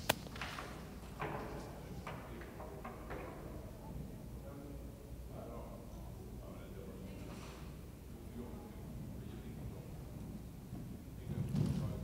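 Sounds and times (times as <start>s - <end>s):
sharp crack: 0.0s - 0.3s.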